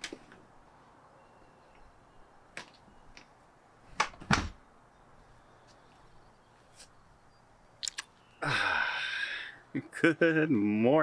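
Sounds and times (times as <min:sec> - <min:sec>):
sharp click: 0:07.8 - 0:08.1.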